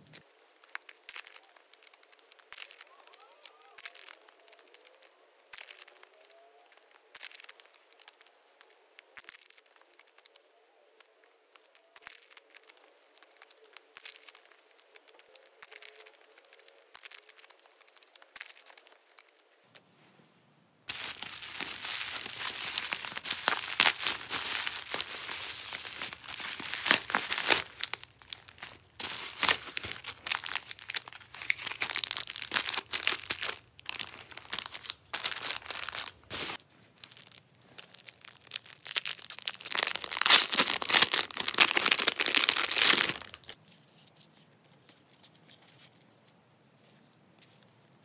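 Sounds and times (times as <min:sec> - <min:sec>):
plastic packaging crinkling: 0:00.1 - 0:19.4, 0:20.9 - 0:43.6.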